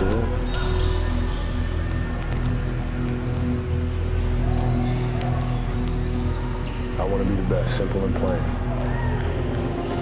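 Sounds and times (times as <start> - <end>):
background music low tones: 0.0 - 10.0.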